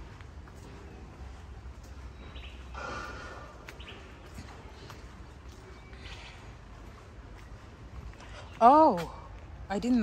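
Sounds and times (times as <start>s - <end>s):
birds chirping: 0.0s - 10.0s
low rumble of outdoor air: 0.0s - 10.0s.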